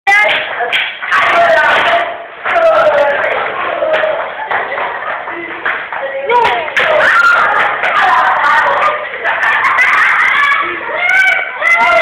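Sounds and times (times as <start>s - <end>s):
people talking and shouting: 0.1s - 12.0s.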